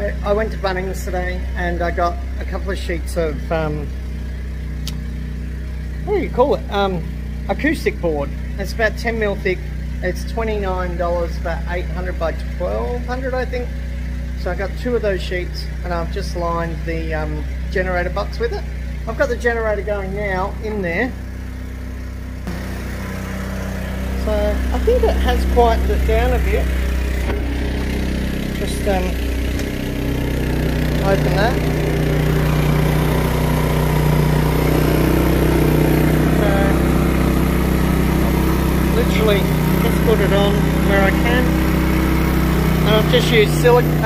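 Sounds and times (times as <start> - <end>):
generator engine humming: 0.0 - 44.0
short click: 4.8 - 5.0.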